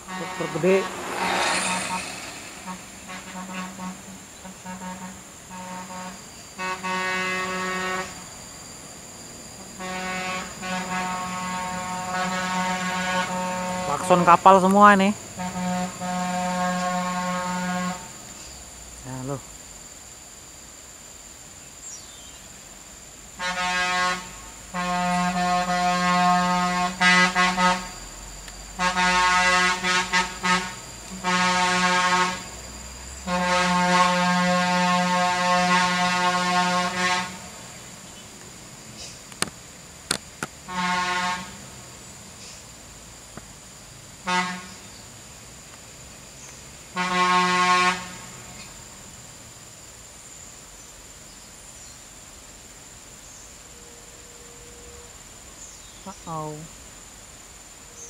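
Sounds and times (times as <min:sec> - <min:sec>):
vehicle air horn blasts: 0:00.0 - 0:08.2, 0:09.8 - 0:14.3, 0:15.4 - 0:18.1, 0:23.4 - 0:28.0, 0:28.8 - 0:32.5, 0:33.2 - 0:37.6, 0:40.7 - 0:41.7, 0:44.2 - 0:44.8, 0:46.9 - 0:48.4.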